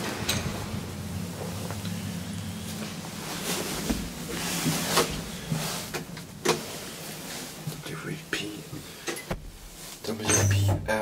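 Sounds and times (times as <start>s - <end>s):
low background noise: 0.0s - 11.0s
person whispering: 7.8s - 8.8s.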